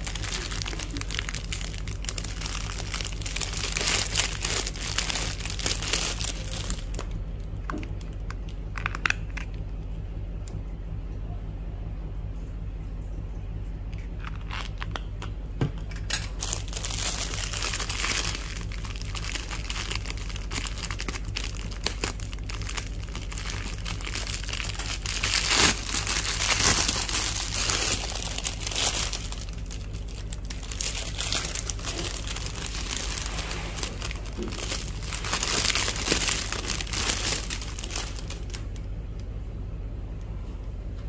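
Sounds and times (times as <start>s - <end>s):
plastic bag crinkling: 0.0s - 9.4s, 14.1s - 15.1s, 16.1s - 38.9s
low hum: 0.0s - 41.0s.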